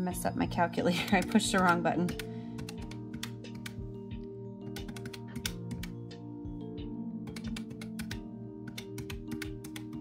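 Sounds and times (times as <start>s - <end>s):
soft background music: 0.0s - 10.0s
calculator keys clicking: 1.1s - 3.8s, 4.8s - 6.0s, 7.3s - 10.0s.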